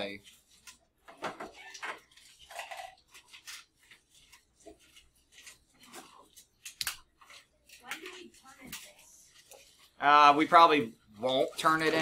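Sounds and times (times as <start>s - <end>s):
rustling of handled objects: 0.0s - 12.0s.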